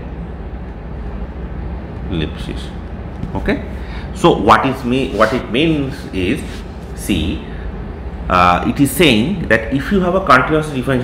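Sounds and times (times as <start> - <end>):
steady background hum and hiss: 0.0 - 11.0.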